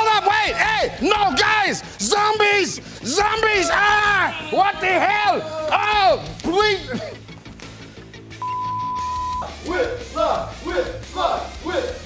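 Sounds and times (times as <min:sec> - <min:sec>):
faint background music: 0:00.0 - 0:12.0
steady test tone beep: 0:08.4 - 0:09.5.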